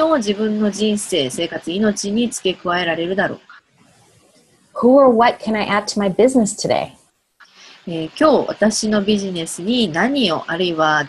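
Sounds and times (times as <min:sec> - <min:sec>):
woman speaking: 0:00.0 - 0:03.6, 0:04.8 - 0:07.0, 0:07.7 - 0:11.0.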